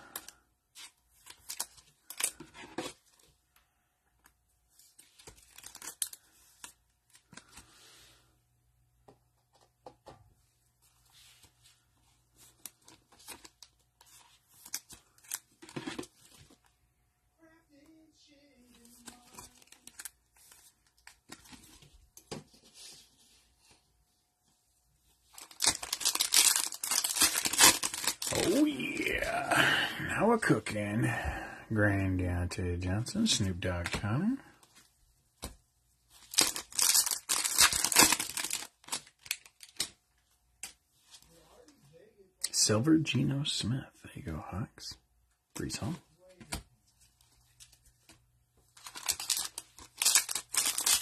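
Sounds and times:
foil pack ripping and crinkling: 5.3s - 6.3s, 25.4s - 29.4s, 36.2s - 39.9s, 48.8s - 51.0s
cards clicking and rustling: 48.8s - 51.0s.

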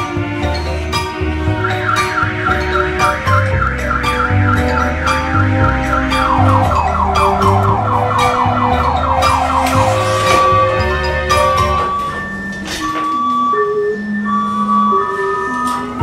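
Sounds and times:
background music with bass line: 0.0s - 12.8s
electronic siren warbling: 1.6s - 16.0s.

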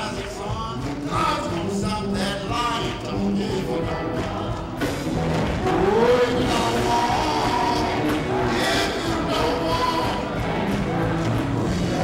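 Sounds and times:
congregation singing gospel song: 0.0s - 12.0s
hand clapping: 0.0s - 12.0s.

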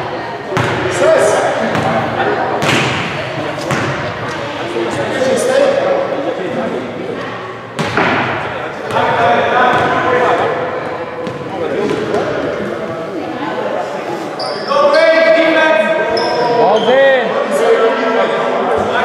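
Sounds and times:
echoing voices: 0.0s - 19.0s
basketball hitting hoop: 7.8s - 9.1s.

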